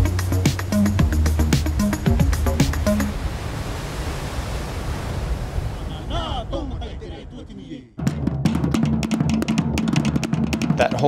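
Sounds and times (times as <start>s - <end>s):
deep sustained drum tones: 0.0s - 3.1s
fast drumming: 0.0s - 3.1s, 8.0s - 11.0s.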